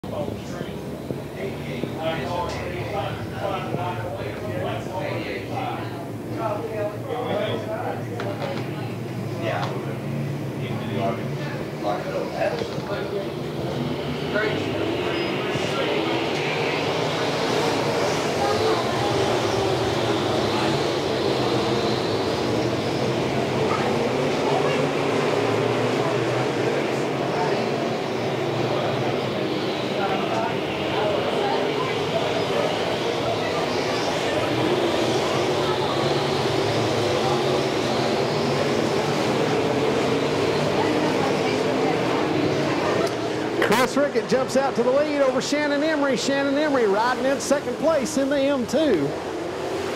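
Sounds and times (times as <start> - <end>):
race car engines droning: 0.0 - 49.9.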